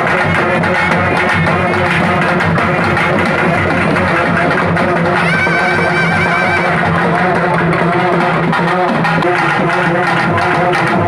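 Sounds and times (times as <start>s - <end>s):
folk drum ensemble playing: 0.0s - 11.0s.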